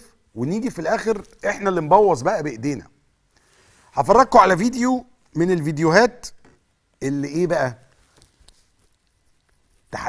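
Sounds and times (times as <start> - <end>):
man talking: 0.0 - 2.9, 4.0 - 6.4, 7.0 - 7.9.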